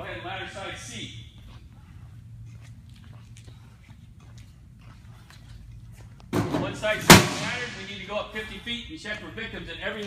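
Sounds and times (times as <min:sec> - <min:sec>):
steady low hum: 0:00.0 - 0:10.0
footsteps on concrete: 0:00.8 - 0:06.4.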